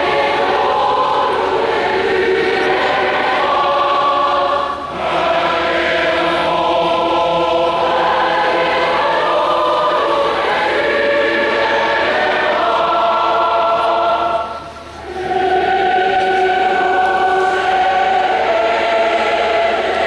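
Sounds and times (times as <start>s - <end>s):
large choir singing chords: 0.0s - 20.0s.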